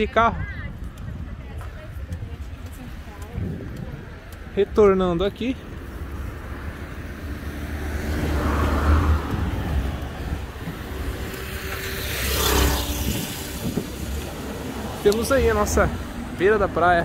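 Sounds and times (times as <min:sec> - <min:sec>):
cars passing: 0:00.0 - 0:17.0.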